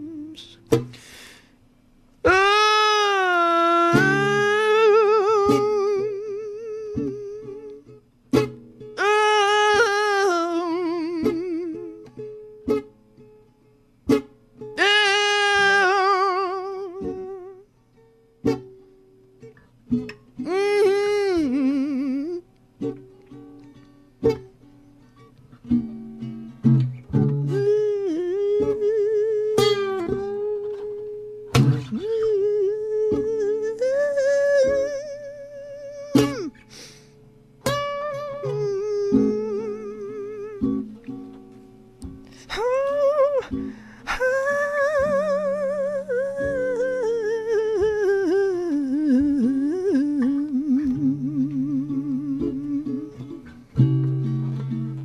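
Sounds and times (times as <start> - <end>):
man singing without words: 0.0 - 1.2, 2.2 - 8.0, 9.0 - 12.2, 14.8 - 17.7, 20.4 - 22.5, 27.1 - 37.0, 37.7 - 41.2, 42.2 - 54.0
plucked guitar notes: 0.0 - 1.2, 1.8 - 55.0.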